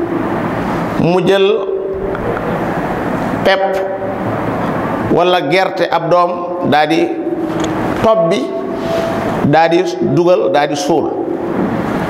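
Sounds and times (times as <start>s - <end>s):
man speaking through microphone: 1.0s - 2.0s, 3.4s - 4.0s, 5.1s - 7.2s, 8.0s - 8.7s, 9.4s - 11.3s
passing motor vehicle: 1.9s - 5.1s.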